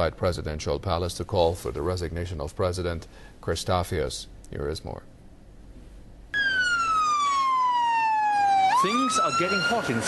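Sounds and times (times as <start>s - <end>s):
fire engine siren wailing: 6.3s - 10.0s.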